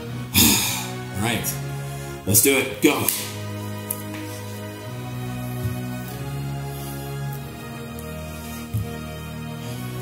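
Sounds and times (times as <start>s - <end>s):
music with long held notes: 0.0s - 10.0s.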